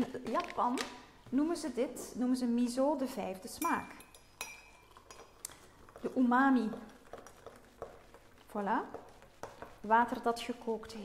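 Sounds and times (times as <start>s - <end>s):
tableware clinks: 3.6s - 4.9s.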